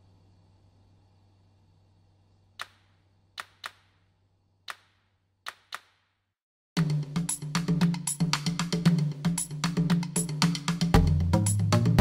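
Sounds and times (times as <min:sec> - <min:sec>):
faint low hum: 0:00.0 - 0:03.4.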